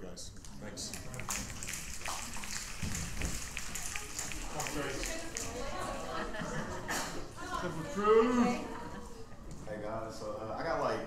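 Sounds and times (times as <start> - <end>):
crowd applauding: 1.0 - 6.9.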